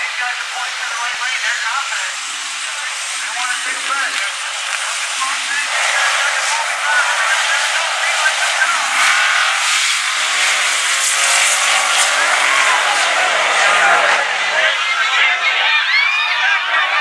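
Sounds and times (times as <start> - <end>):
crowd hubbub: 1.8 - 17.0
cars accelerating hard: 2.4 - 15.4.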